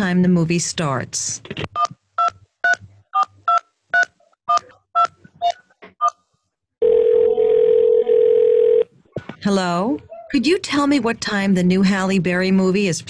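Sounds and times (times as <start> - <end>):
steady phone line tone: 6.8 - 8.9.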